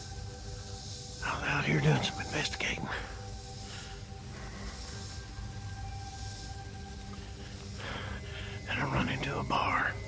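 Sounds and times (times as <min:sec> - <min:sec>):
sustained music notes: 0:00.0 - 0:10.0.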